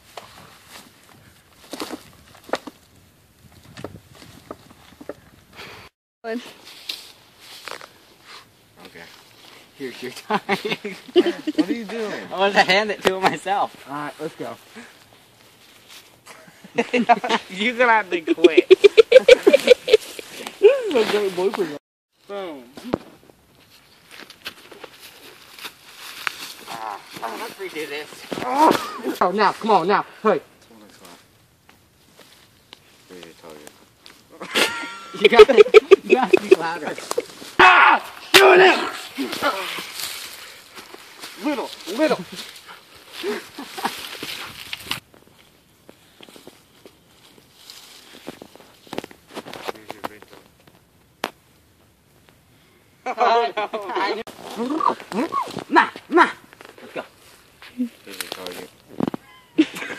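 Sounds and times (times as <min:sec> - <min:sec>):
footsteps on dry leaves: 0:06.3 - 0:08.1, 0:23.5 - 0:28.9, 0:39.1 - 0:50.5.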